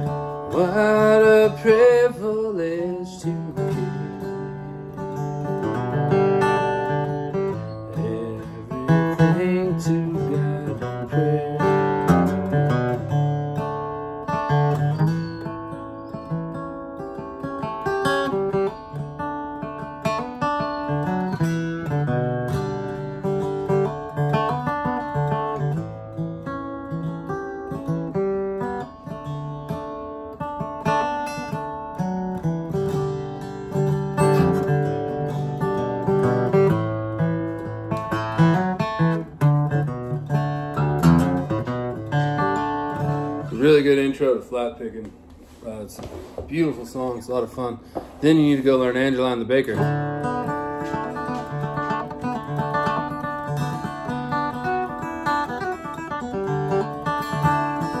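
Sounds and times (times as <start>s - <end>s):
acoustic guitar playing hymn melody: 0.0s - 44.6s, 47.3s - 58.0s.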